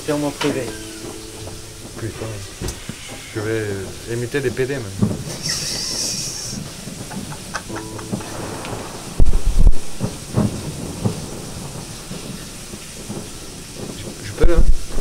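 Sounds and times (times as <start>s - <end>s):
handling noises: 0.0s - 11.2s
heavy low thumps: 0.0s - 15.0s
plucked oud notes: 0.4s - 5.4s, 7.6s - 9.4s.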